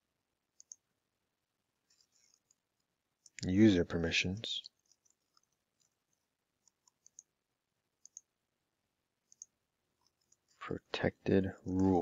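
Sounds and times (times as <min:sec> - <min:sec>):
computer mouse clicks: 0:00.6 - 0:00.8, 0:04.6 - 0:07.3, 0:08.0 - 0:08.3, 0:09.3 - 0:10.6.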